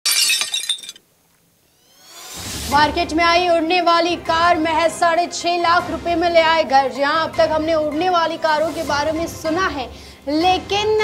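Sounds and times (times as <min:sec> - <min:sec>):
glass breaking crash: 0:00.0 - 0:01.0.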